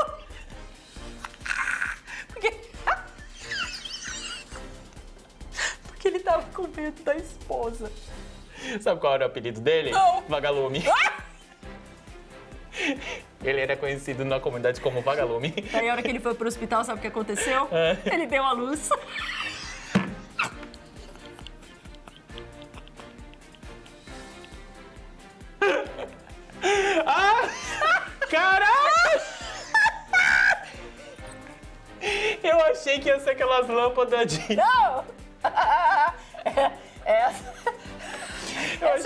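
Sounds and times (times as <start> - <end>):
background music: 0.0 - 39.0
people laughing hard: 1.2 - 4.8, 10.5 - 11.5, 14.8 - 16.4, 17.3 - 24.0, 25.6 - 32.4, 34.2 - 39.0
woman squealing laughter: 1.3 - 4.6, 10.8 - 11.4, 18.9 - 20.7, 27.1 - 30.8, 34.5 - 36.2.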